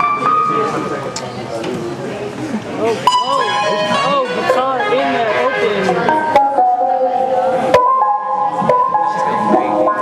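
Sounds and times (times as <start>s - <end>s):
electronic keyboard chords: 2.8s - 10.0s.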